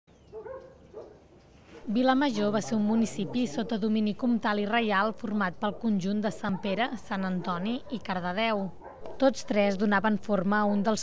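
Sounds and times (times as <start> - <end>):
distant dog barking: 0.2 - 2.0, 2.9 - 4.0, 5.6 - 9.8.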